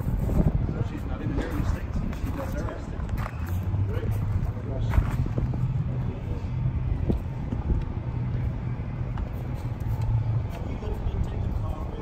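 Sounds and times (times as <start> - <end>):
low engine rumble: 0.0 - 12.0
faint background chatter: 0.3 - 12.0.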